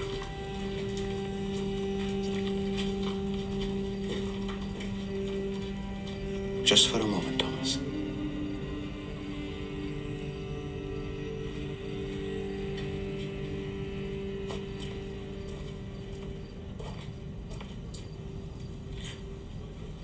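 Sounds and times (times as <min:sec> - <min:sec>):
low held film music notes: 0:00.0 - 0:20.0.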